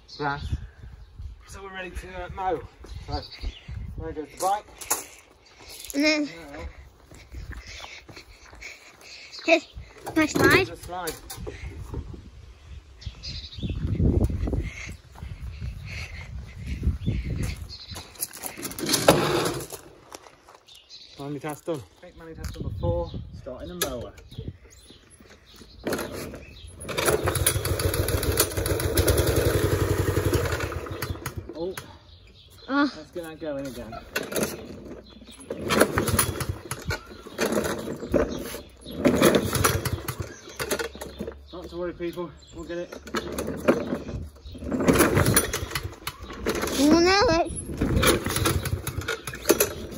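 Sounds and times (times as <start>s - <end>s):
lawn mower engine turning over: 9.9s - 12.0s, 17.8s - 20.6s, 25.0s - 32.0s, 33.4s - 42.0s, 42.6s - 49.9s
rasping recoil cord pulls: 18.5s - 19.9s, 25.8s - 31.4s, 34.1s - 41.2s, 43.0s - 46.9s, 47.7s - 49.9s.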